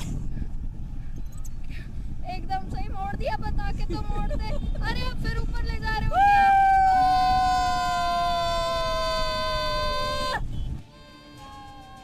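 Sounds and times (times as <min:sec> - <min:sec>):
wind rumble on microphone: 0:00.0 - 0:11.0
boy screaming: 0:06.1 - 0:10.4.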